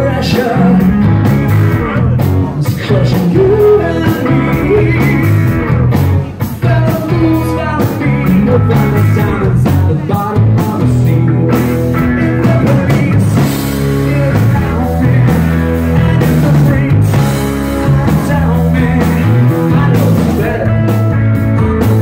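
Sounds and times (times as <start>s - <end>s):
live rock band playing: 0.0s - 22.0s
man singing lead: 0.0s - 22.0s.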